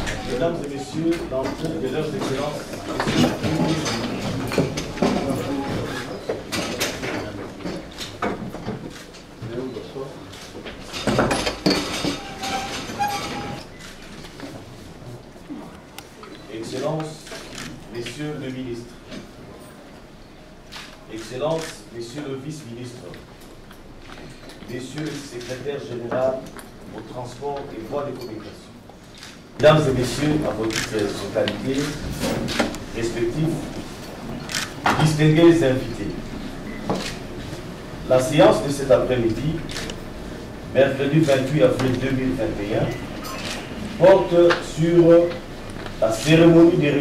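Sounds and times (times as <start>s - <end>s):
chair squeaks: 0.0s - 14.5s, 41.2s - 45.5s
chairs rolling across floor: 0.0s - 15.7s, 23.4s - 47.0s
room noise: 0.0s - 47.0s.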